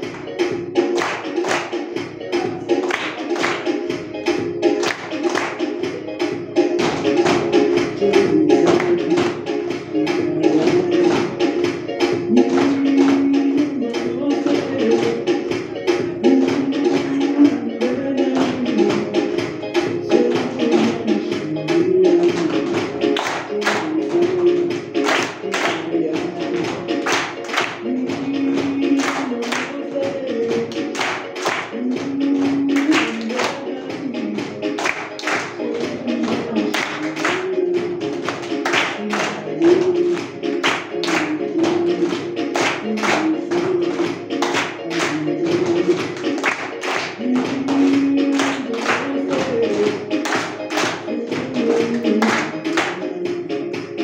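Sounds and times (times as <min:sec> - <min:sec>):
music with sung melody: 0:00.0 - 0:54.0
rhythmic hand claps: 0:00.0 - 0:54.0.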